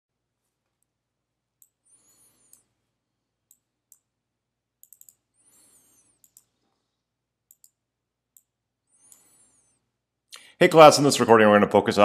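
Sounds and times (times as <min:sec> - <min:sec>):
computer mouse clicks: 0:01.6 - 0:02.7, 0:03.5 - 0:04.1, 0:04.8 - 0:06.8, 0:07.5 - 0:09.7.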